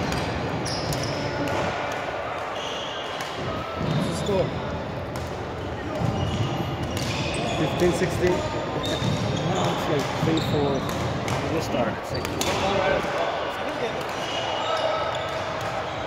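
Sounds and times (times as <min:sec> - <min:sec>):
badminton rackets hitting shuttlecocks: 0:00.0 - 0:02.1
background chatter of players: 0:00.0 - 0:16.0.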